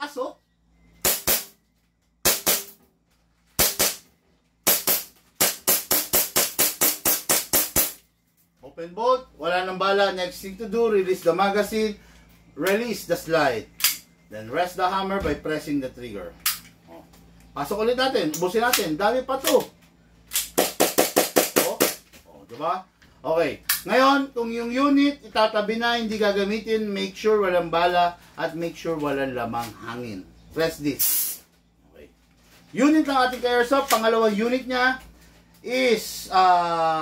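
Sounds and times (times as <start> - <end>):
airsoft pistol shots: 1.0 - 1.6, 2.2 - 2.8, 3.6 - 4.0, 4.6 - 8.0.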